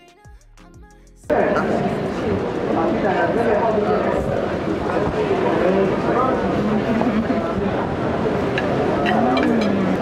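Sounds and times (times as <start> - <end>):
indistinct voices: 1.3 - 10.0.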